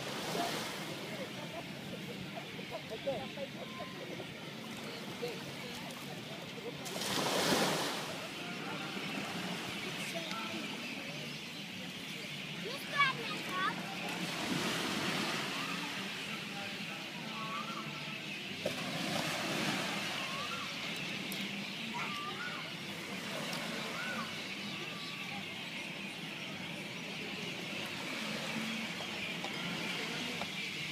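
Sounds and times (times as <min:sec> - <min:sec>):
faint distant voices: 0:00.0 - 0:30.9.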